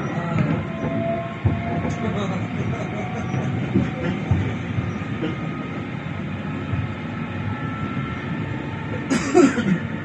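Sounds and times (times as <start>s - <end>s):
tram knock: 0.0s - 7.7s
tram rumbling on rails: 0.0s - 10.0s.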